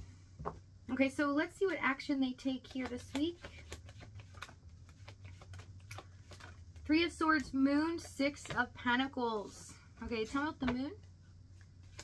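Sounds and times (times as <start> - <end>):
steady low hum: 0.0 - 12.0
cards being shuffled: 2.6 - 8.7, 11.6 - 12.0.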